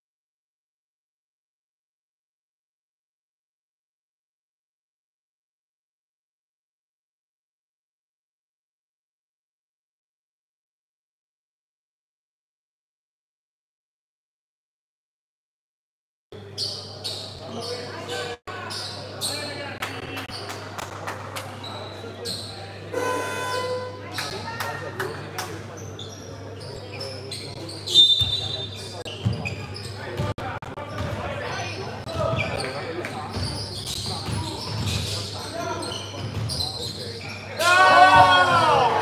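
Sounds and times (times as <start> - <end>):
players calling out: 33.4 - 39.0.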